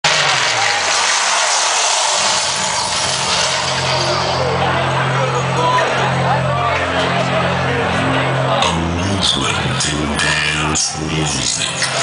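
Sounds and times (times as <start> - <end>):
loud club music: 0.0 - 12.0.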